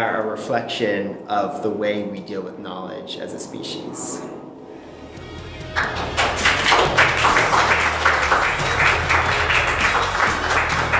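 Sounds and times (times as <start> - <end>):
music: 4.7 - 10.9
quick even clapping: 5.8 - 10.9.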